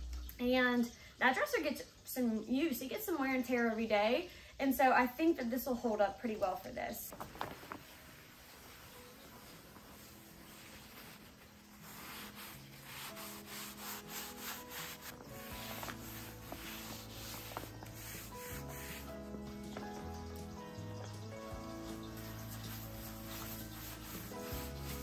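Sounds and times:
background music: 0:06.2 - 0:25.0
cloth wiping wood: 0:08.1 - 0:19.4, 0:22.1 - 0:25.0.

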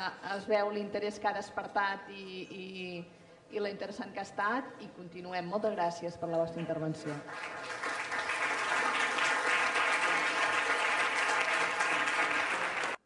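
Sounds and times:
audience applauding: 0:07.2 - 0:13.0.

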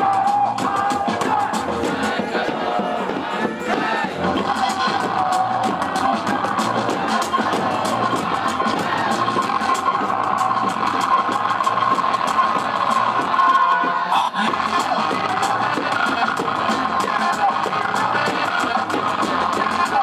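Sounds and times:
loud live music with drum beat: 0:00.0 - 0:20.0.

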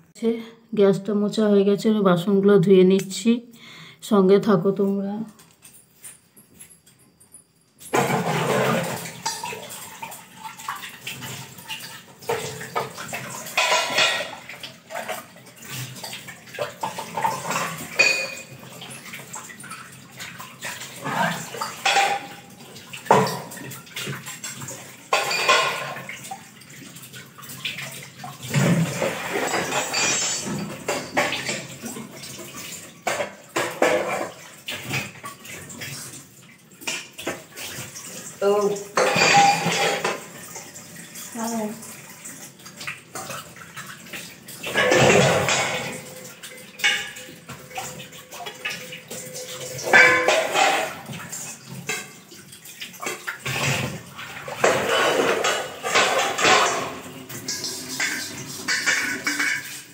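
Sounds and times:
steel bowls and pots clattering: 0:05.3 - 0:36.2, 0:36.8 - 0:59.9
tap water gushing: 0:07.9 - 0:59.9.

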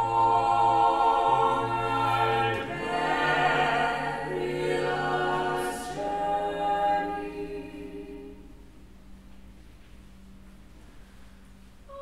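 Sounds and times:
room rumble: 0:00.0 - 0:12.0.

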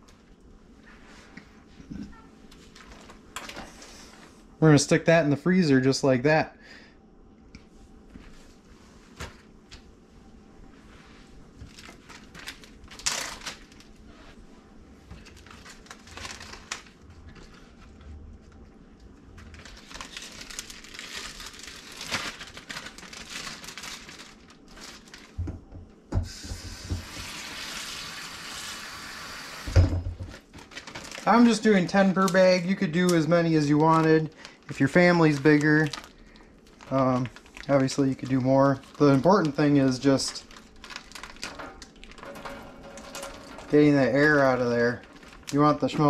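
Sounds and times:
plastic bag crinkling: 0:02.1 - 0:03.6, 0:11.6 - 0:14.3, 0:15.0 - 0:25.4, 0:30.2 - 0:46.0
kitchen tap running: 0:26.1 - 0:30.1
thump: 0:29.7 - 0:30.3.

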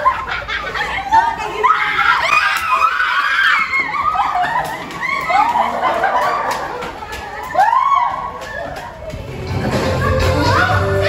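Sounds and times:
people laughing: 0:00.0 - 0:02.6, 0:03.6 - 0:11.0
people screaming: 0:01.5 - 0:06.8, 0:07.4 - 0:09.0.

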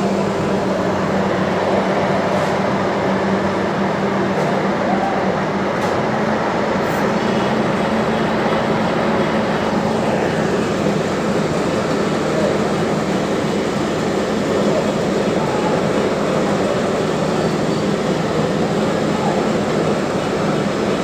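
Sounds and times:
machine engine running: 0:00.0 - 0:21.0.

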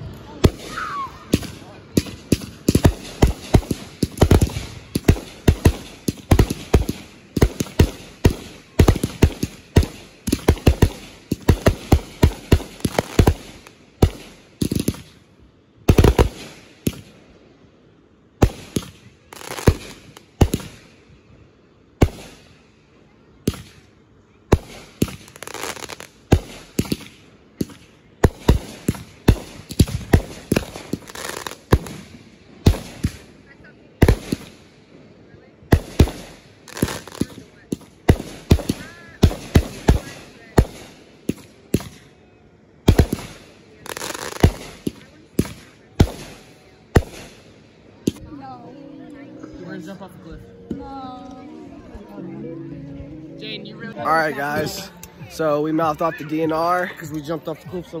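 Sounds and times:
fireworks bangs and crackles: 0:00.3 - 0:15.2, 0:15.8 - 0:17.2, 0:18.4 - 0:21.0, 0:22.0 - 0:22.6, 0:24.5 - 0:34.8, 0:35.7 - 0:42.2, 0:42.8 - 0:48.2.

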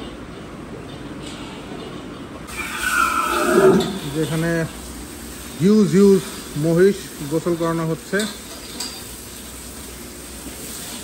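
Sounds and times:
water buffalo bellowing: 0:02.5 - 0:04.1.

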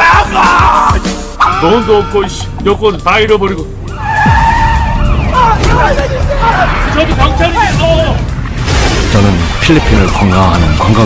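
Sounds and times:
excited shouting voices: 0:00.0 - 0:02.6, 0:03.9 - 0:08.2
car tyres screeching: 0:03.8 - 0:08.4.

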